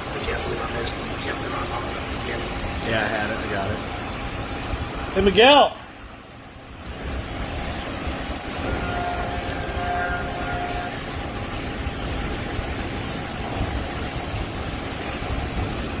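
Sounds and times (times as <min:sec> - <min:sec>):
distant traffic rumble: 0:00.0 - 0:16.0
wind buffeting microphone: 0:06.0 - 0:16.0.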